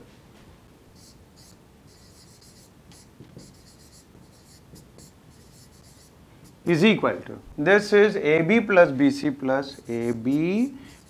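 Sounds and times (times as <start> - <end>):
marker scratching on whiteboard: 1.0 - 6.8, 9.7 - 11.0.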